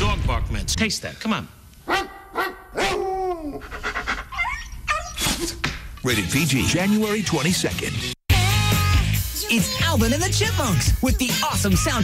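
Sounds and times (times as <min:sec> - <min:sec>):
man barking and whining like dog: 0:01.8 - 0:05.6.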